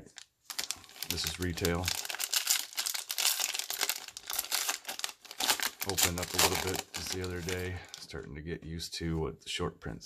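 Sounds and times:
card pack wrapper tearing and crinkling: 0:00.0 - 0:08.2.

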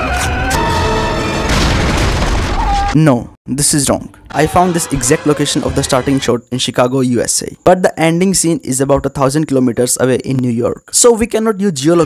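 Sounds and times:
film music: 0:00.0 - 0:02.1, 0:03.6 - 0:06.4
boom: 0:01.4 - 0:02.9.

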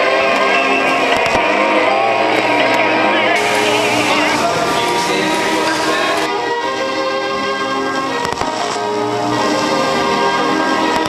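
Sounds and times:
sustained layered tones: 0:00.0 - 0:11.0.

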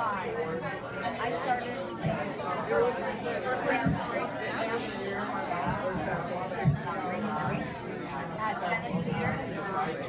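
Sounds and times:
babble of adults and children talking: 0:00.0 - 0:10.0.

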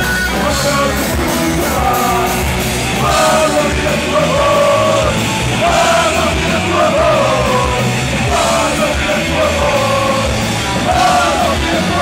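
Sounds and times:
punk rock band playing: 0:00.0 - 0:12.0.

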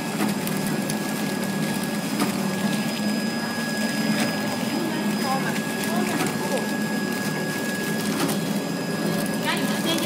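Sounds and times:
packaging machine drone: 0:00.0 - 0:10.0
high steady whine: 0:02.4 - 0:10.0.

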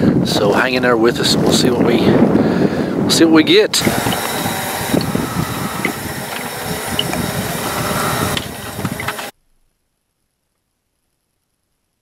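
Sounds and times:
camp stove hiss and rumble: 0:00.0 - 0:09.3.

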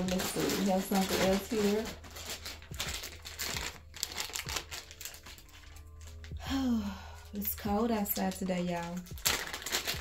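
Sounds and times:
packaging crinkling: 0:00.0 - 0:06.4, 0:07.2 - 0:10.0.

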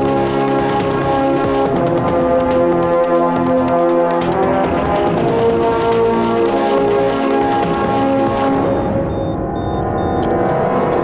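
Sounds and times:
droning film score: 0:00.0 - 0:11.0
high electronic beeps: 0:08.6 - 0:10.5.

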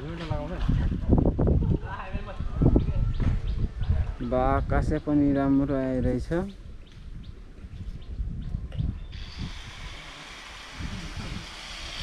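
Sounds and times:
wind rumbling on microphone: 0:00.0 - 0:12.0
steady hiss: 0:09.2 - 0:12.0.

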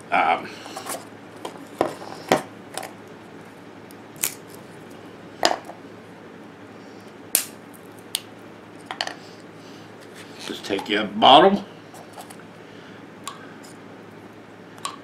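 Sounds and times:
wooden sticks snapping: 0:07.4 - 0:08.3.

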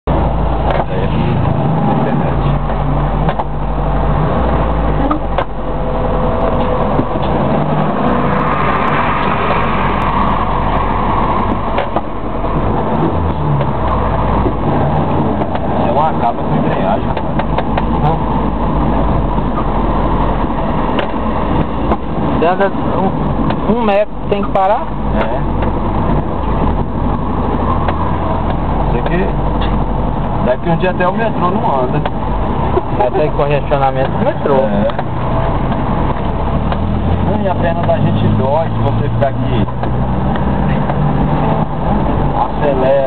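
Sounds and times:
car engine and road rumble: 0:00.0 - 0:43.0.

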